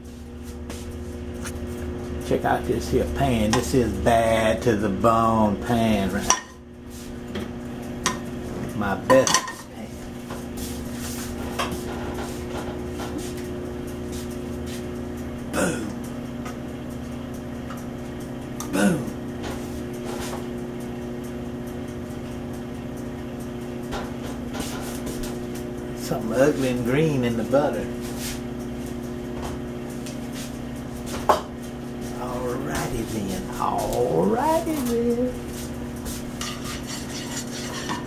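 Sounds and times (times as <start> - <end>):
steady low hum: 0.0 - 38.0
metal utensil scraping frying pan: 36.3 - 38.0.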